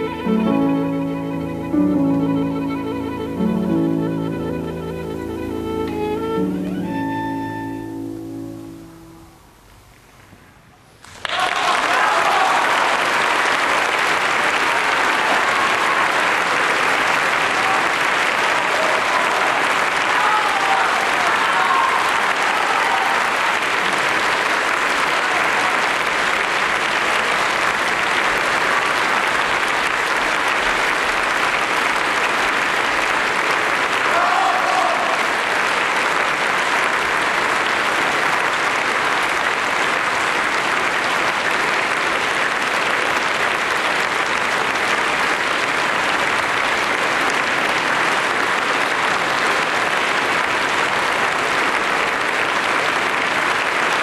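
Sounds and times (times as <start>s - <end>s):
audience applauding: 0.0s - 8.8s, 11.0s - 54.0s.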